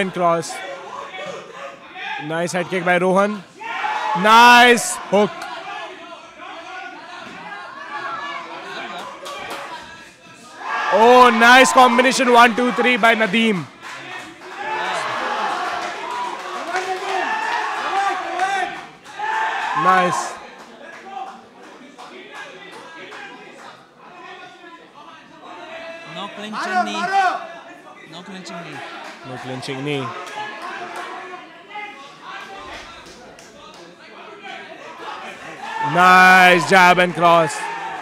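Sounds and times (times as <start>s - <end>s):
crowd shouting and cheering: 0.0s - 24.7s, 25.4s - 38.0s.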